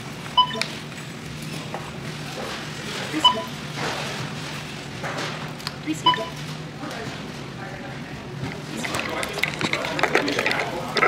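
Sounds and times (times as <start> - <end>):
store hum: 0.0 - 11.0
barcode scanner beep: 0.4 - 0.8, 3.2 - 3.6, 5.9 - 6.4.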